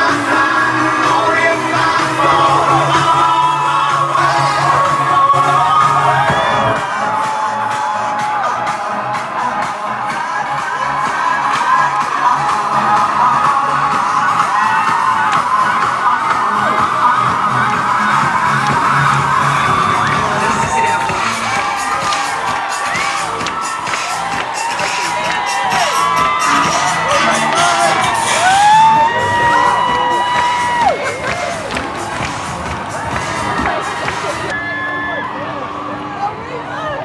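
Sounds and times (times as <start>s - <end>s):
crowd cheering and whooping: 0.0s - 37.0s
music: 0.0s - 37.0s.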